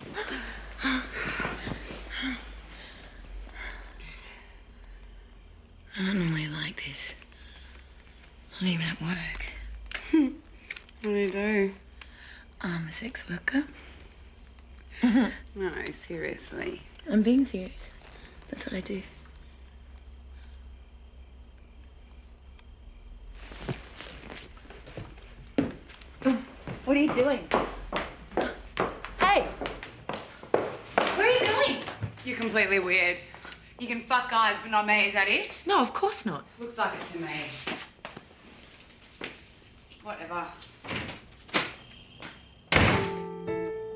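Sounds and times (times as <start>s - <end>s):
rustling on leather sofa: 23.3s - 26.1s
door slamming shut: 42.7s - 43.3s.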